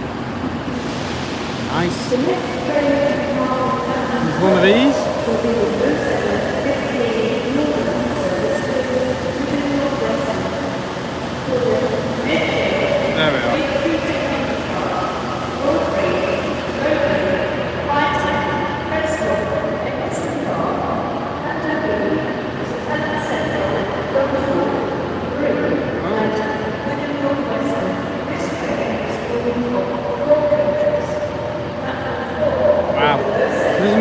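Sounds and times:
train engine droning: 0.0s - 34.0s.

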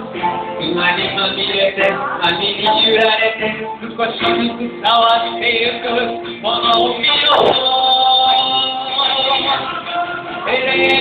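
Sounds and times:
song with singer and instruments: 0.0s - 11.0s.

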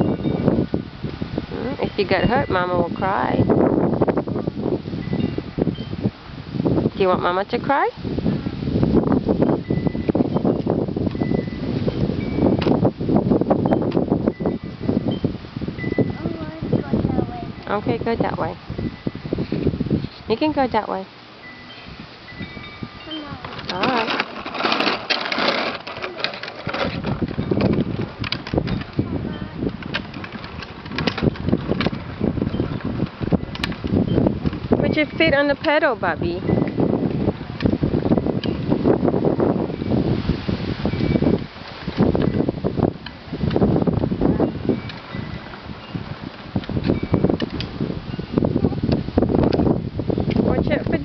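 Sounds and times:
plastic wheels rattling on asphalt: 23.1s - 40.1s, 40.8s - 51.0s.

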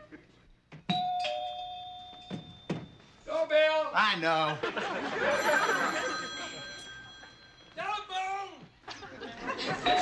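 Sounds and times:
two-note doorbell chime: 0.9s - 3.0s, 5.3s - 7.8s.

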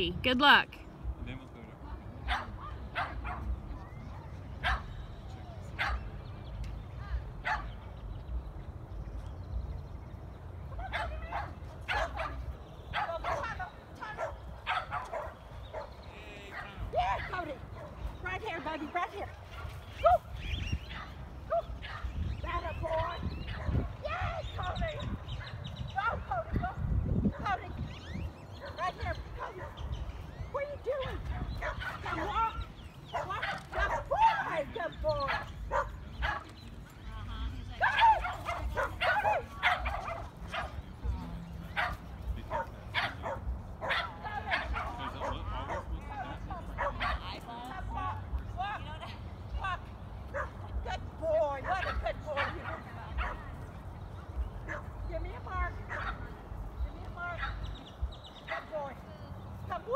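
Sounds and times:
dog barking and yipping: 31.4s - 34.5s, 35.2s - 36.5s, 37.8s - 40.8s, 41.8s - 45.9s, 50.3s - 50.6s.

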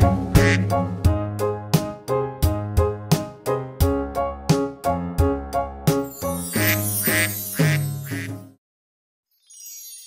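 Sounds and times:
children's song music: 0.0s - 8.6s
cartoon duck quacks: 6.6s - 8.4s.

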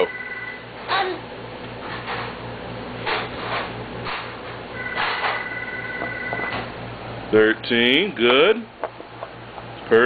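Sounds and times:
high two-note tone: 0.0s - 0.6s.

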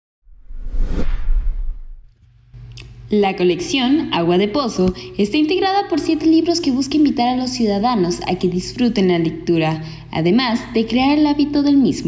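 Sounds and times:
rising whoosh: 0.3s - 2.1s
deep low rumble: 0.3s - 2.6s.

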